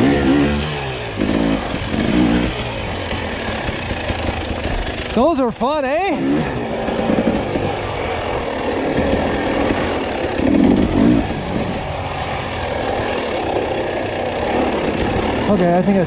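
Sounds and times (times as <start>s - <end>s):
dirt bike engine under throttle: 0.0s - 16.0s.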